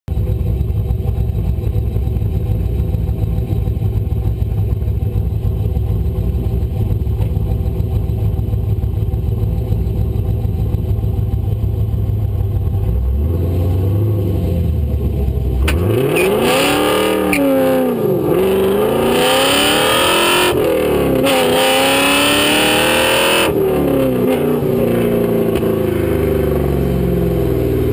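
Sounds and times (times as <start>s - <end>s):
car engine idling: 0.1s - 27.9s
engine revving: 12.8s - 27.9s.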